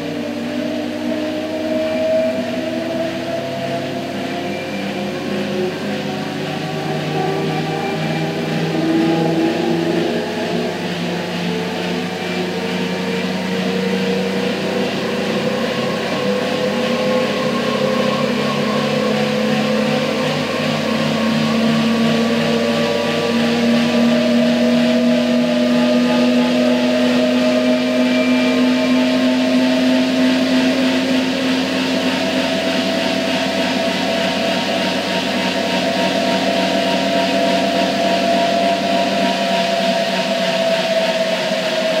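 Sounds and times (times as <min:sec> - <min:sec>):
steady machine whine: 0:00.0 - 0:42.0.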